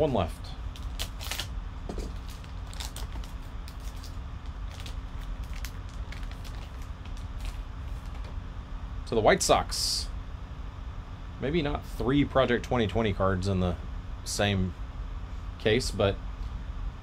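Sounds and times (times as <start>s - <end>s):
steady low hum: 0.0s - 17.0s
foil wrapper crinkling and tearing: 0.7s - 8.3s.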